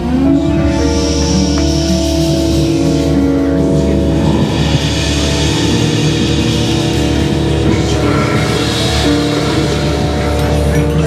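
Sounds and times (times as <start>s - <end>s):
live band instrumental: 0.0s - 11.0s
steady bass: 0.0s - 11.0s.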